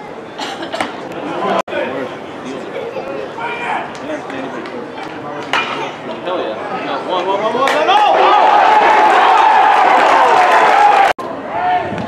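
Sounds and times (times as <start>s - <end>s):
chatter of many voices: 0.0s - 8.2s.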